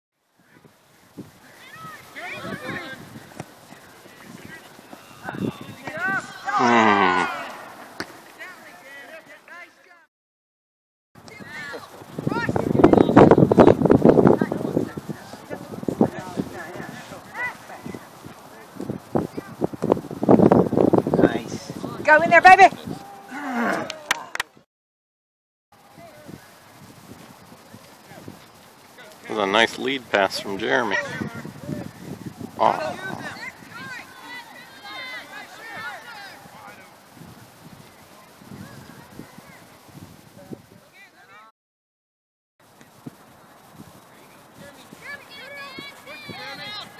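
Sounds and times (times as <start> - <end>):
distant voices shouting: 1.4 - 9.8, 21.4 - 24.4, 30.1 - 37.2, 44.8 - 46.9
distant people calling out: 1.4 - 10.0, 14.4 - 19.6, 22.0 - 24.4, 28.9 - 37.2, 44.2 - 46.9.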